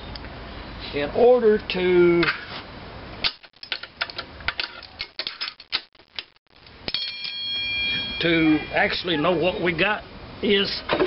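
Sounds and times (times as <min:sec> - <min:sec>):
metal tools clinking: 0:03.2 - 0:05.9, 0:06.9 - 0:09.1
steady high-pitched tone: 0:06.5 - 0:09.7.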